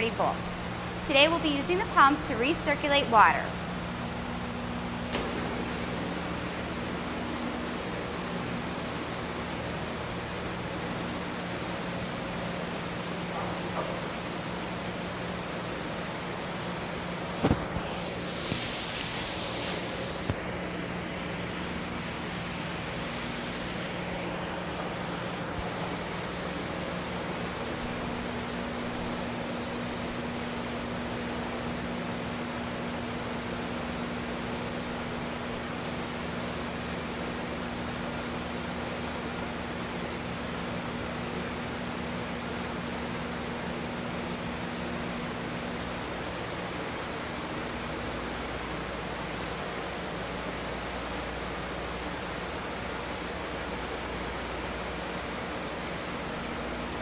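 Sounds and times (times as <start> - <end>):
pump motor hum: 0.0 - 57.0.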